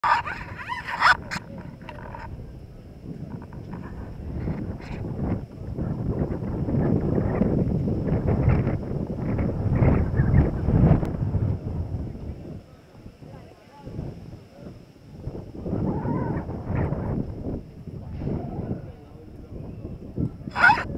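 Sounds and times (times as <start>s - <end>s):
street background: 0.0s - 20.9s
wind buffeting microphone: 0.0s - 20.9s.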